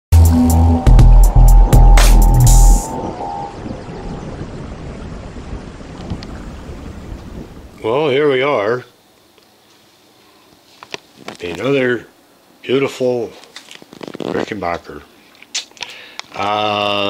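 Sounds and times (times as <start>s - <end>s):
held music tone: 0.1s - 3.7s
deep bass hits: 0.2s - 3.6s.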